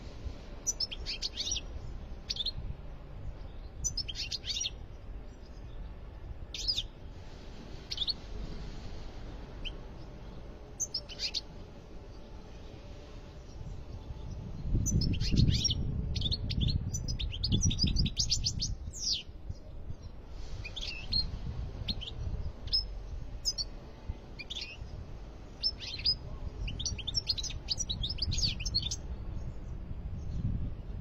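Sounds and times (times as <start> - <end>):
goldfinch twittering song: 0.6 - 2.6, 3.3 - 4.8, 6.5 - 7.0, 10.8 - 12.3, 13.4 - 23.7, 24.4 - 25.0, 25.6 - 30.5.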